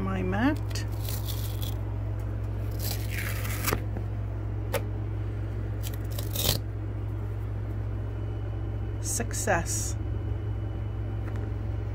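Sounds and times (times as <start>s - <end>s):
steady low hum: 0.0s - 11.9s
rustling tear of peeled scraps: 0.5s - 4.0s, 5.8s - 6.7s.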